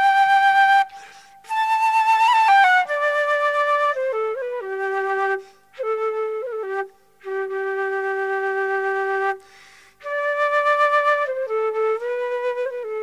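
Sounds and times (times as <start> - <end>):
solo flute playing: 0.0 - 13.0.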